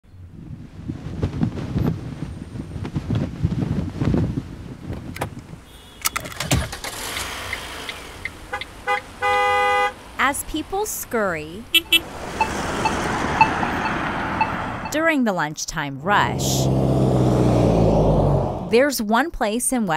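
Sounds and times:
flag flapping in wind: 0.1s - 5.6s
street traffic: 4.5s - 18.8s
seatbelt buckle clicking: 5.1s - 6.6s
car horn: 5.6s - 6.3s, 8.5s - 10.0s, 11.7s - 15.0s.

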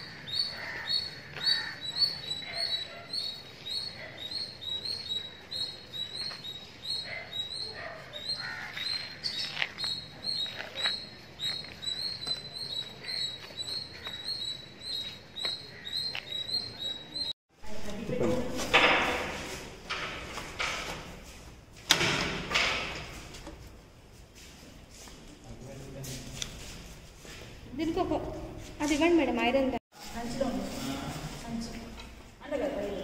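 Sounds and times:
bird chirping: 0.0s - 17.4s
faint street noise: 0.0s - 21.9s, 23.1s - 33.0s.

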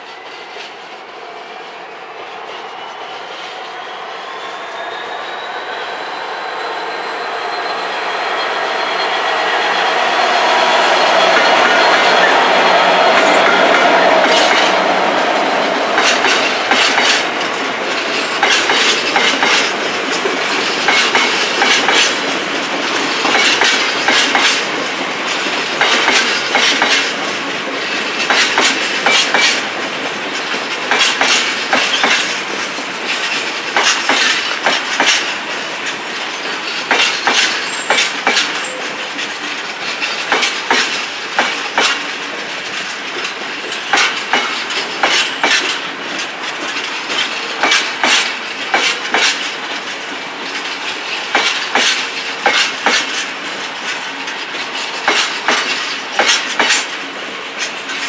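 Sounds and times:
wheels clacking over rail joints: 11.0s - 58.0s.

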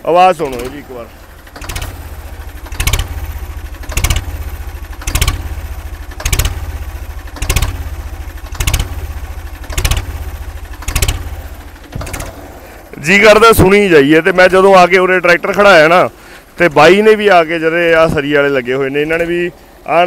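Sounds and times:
tractor diesel engine idling: 0.0s - 20.0s.

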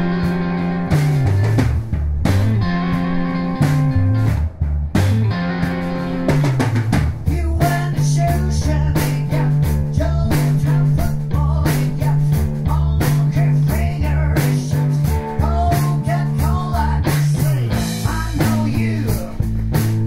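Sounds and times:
drum kit beat: 0.0s - 20.0s
electric bass: 0.0s - 20.0s
electric guitar: 0.0s - 20.0s.

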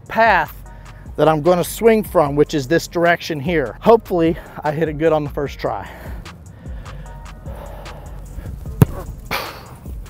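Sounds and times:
background music: 0.0s - 10.0s
bare foot kicking football: 8.5s - 9.4s.

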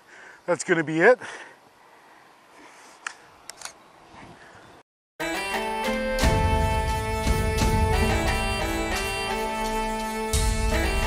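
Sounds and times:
camera handling clicks: 3.0s - 3.8s.

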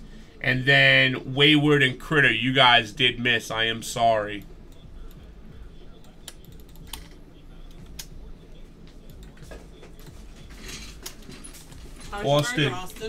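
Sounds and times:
low steady hum: 0.0s - 13.0s
keyboard typing: 6.0s - 8.1s.

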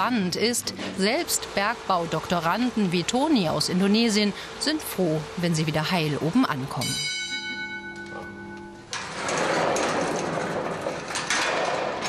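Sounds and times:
signal bell ringing: 6.6s - 8.9s
metal gate knocks: 7.4s - 12.0s.

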